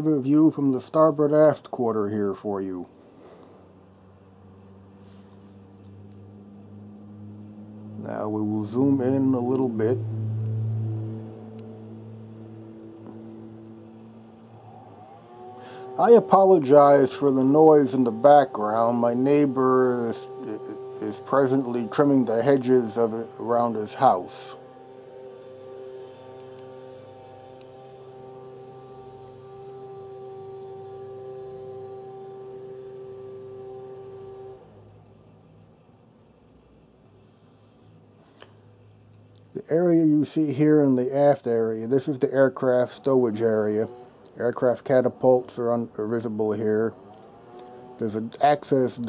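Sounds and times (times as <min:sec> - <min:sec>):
hedge trimmer motor droning: 0:00.0 - 0:35.8, 0:38.3 - 0:49.0.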